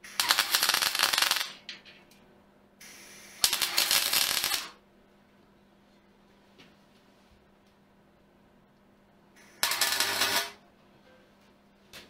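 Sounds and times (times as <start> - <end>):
arc welding crackle: 0.0 - 1.6, 2.8 - 4.8, 9.4 - 10.6.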